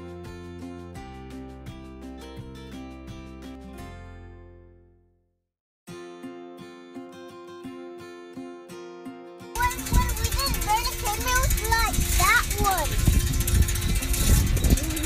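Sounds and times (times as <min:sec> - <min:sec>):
soft plucked guitar music: 0:00.0 - 0:05.0, 0:05.9 - 0:15.0
child's high voice: 0:09.6 - 0:13.1
wind buffeting microphone: 0:09.6 - 0:15.0.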